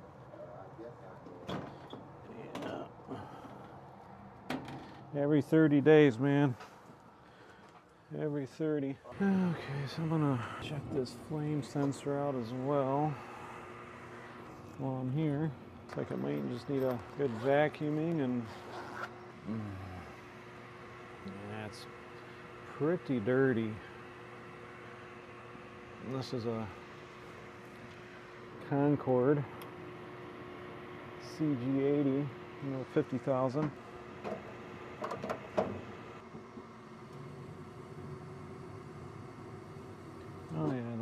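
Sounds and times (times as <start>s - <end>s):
low machine hum: 0.0s - 41.0s
man's voiced grunt: 19.5s - 20.0s.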